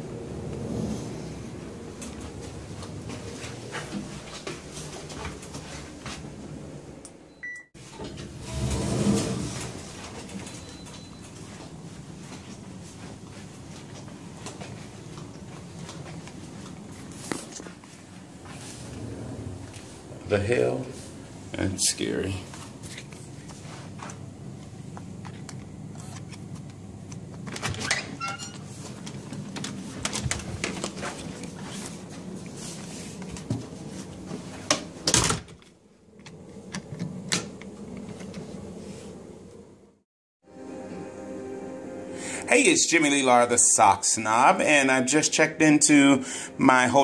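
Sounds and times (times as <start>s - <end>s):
lift doors sliding open: 0.0s - 7.0s, 7.8s - 11.8s, 18.4s - 21.1s
electronic lift chime: 10.4s - 11.3s.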